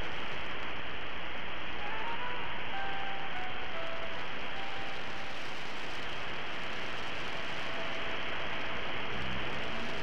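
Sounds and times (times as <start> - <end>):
radio static hiss: 0.0 - 2.2, 3.7 - 10.0
faint melody of pure notes: 1.8 - 5.6.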